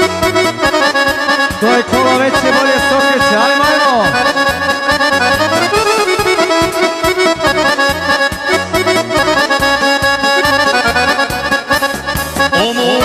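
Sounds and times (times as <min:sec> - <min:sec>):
accordion melody: 0:00.0 - 0:13.0
bouncing bass beat: 0:01.5 - 0:13.0.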